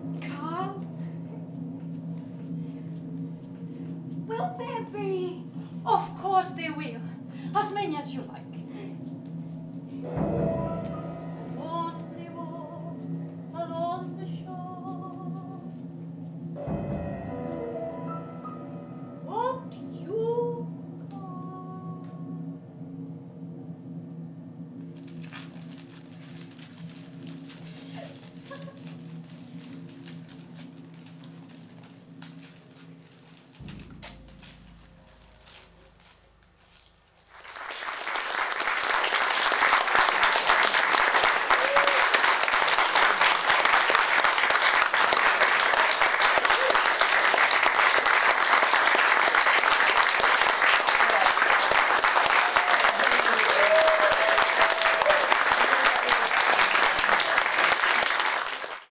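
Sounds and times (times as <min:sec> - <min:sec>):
held music chord: 0:08.6 - 0:24.6, 0:33.6 - 0:37.3
audience applause: 0:37.3 - 0:58.9.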